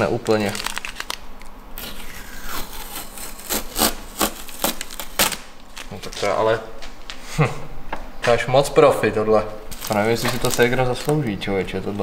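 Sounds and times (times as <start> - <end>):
masking tape ripping off paint: 0.0 - 6.3, 9.7 - 11.2.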